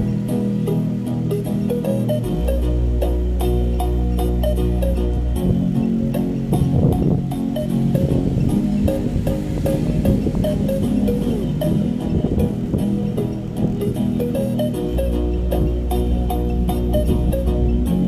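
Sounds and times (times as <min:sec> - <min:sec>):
bass-heavy music through speaker: 0:00.0 - 0:18.0.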